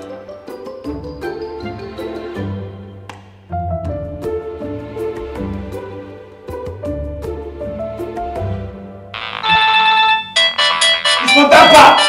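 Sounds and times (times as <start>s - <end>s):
phone ringtone melody: 9.2s - 12.0s.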